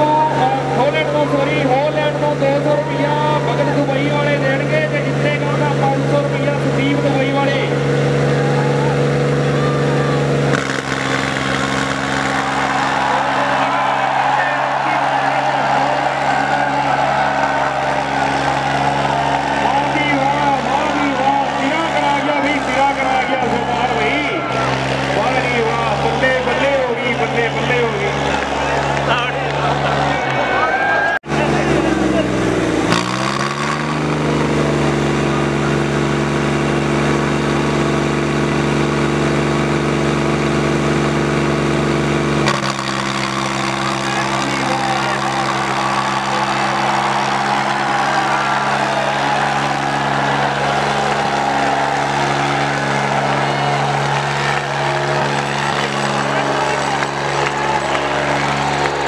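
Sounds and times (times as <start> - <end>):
voices: 0.0 - 10.5, 12.2 - 32.9, 43.1 - 59.0
tractor diesel engines under load: 0.0 - 59.0.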